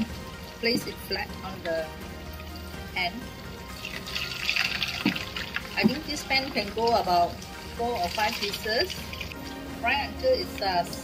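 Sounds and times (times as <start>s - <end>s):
meat deep-frying in oil: 0.0s - 11.0s.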